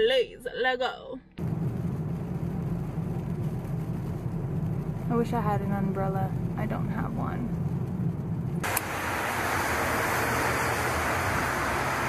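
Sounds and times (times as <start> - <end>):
car cabin road noise: 0.0 - 12.0
tyres hissing on wet road: 7.8 - 12.0.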